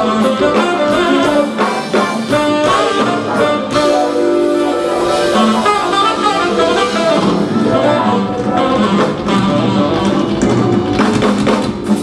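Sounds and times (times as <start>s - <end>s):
bass: 0.0s - 12.0s
drums: 0.0s - 12.0s
electric guitar: 0.0s - 12.0s
keyboards: 0.0s - 12.0s
saxophone: 0.0s - 12.0s.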